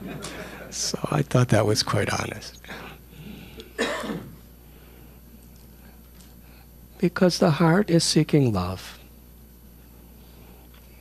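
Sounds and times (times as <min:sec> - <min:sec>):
man clearing his throat: 0:03.6 - 0:04.5.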